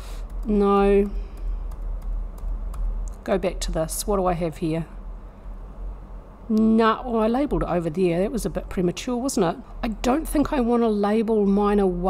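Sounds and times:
steady low hum: 0.0s - 12.0s
keyboard keys clicking: 0.2s - 2.9s.

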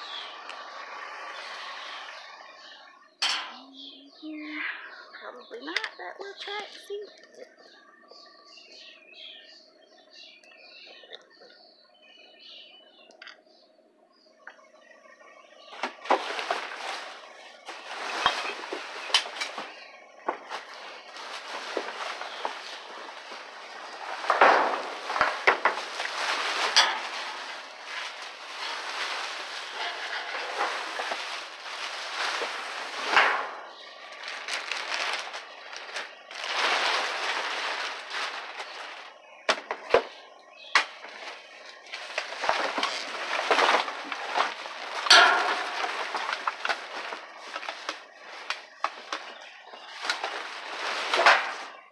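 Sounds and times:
plastic bags crinkling: 15.8s - 40.2s, 40.9s - 51.9s.

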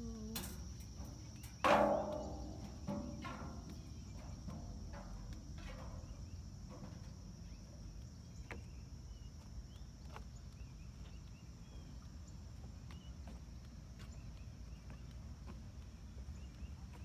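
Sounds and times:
crickets chirring: 0.0s - 17.0s
footsteps on wooden boards: 0.9s - 17.0s.

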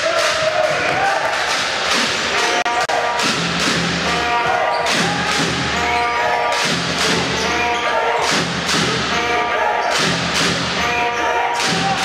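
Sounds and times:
crowd noise: 0.0s - 12.0s
music: 0.0s - 12.0s.

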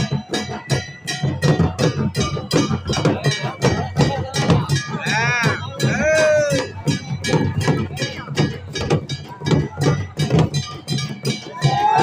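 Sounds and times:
crowd noise: 0.0s - 12.0s
rhythmic percussion beating: 0.0s - 12.0s
crowd high wavering cry: 2.4s - 8.5s, 9.5s - 12.0s.

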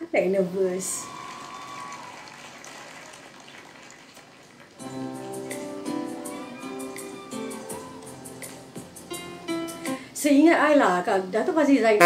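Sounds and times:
faint audience applause: 1.0s - 5.0s
music: 4.8s - 10.2s.

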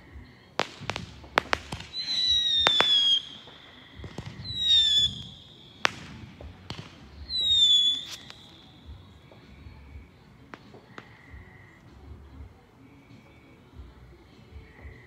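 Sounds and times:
fireworks whistling: 0.0s - 12.1s
fireworks cracking and popping: 0.0s - 12.6s.

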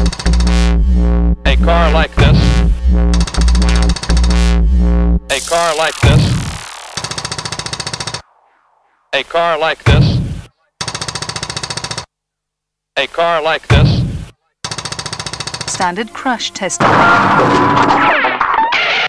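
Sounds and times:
electronic breakbeat music: 0.0s - 8.2s
rapid stuttering bursts: 0.0s - 9.8s, 10.8s - 12.1s, 14.6s - 16.0s
sampled voice: 0.7s - 7.0s, 9.1s - 10.8s.

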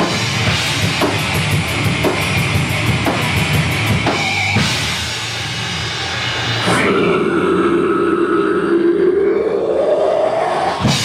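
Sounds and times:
drumming: 0.0s - 7.0s
metal band playing live: 0.0s - 11.0s
long distorted note: 6.3s - 11.0s.

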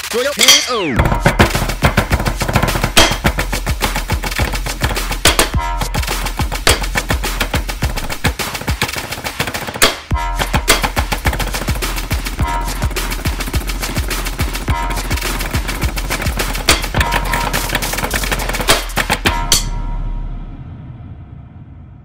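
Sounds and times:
rapid snare drum strokes: 0.0s - 19.7s.

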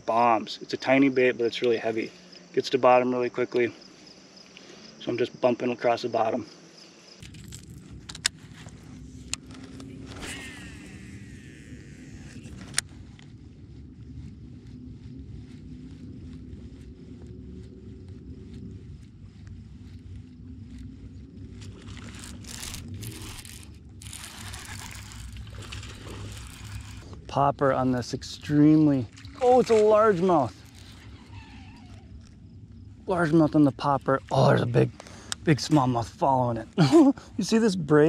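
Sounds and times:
low steady rumble: 7.2s - 38.0s
fishing reel ticking: 9.0s - 13.2s, 21.6s - 27.2s.

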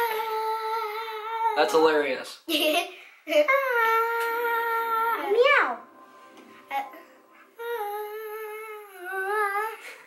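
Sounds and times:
child singing ooh: 0.0s - 1.6s, 3.4s - 5.4s, 7.6s - 10.0s.

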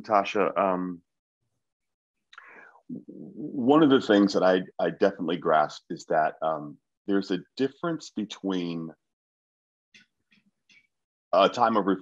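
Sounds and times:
faint breath: 2.4s - 2.9s.

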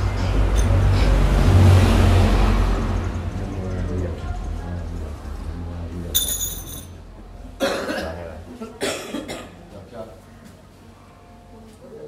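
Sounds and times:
person coughing: 7.6s - 9.7s.

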